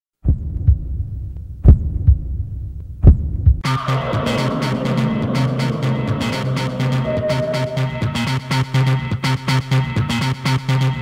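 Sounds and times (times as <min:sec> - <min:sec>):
heartbeat-like low thumps: 0:00.2 - 0:08.6
low hum: 0:03.6 - 0:09.0.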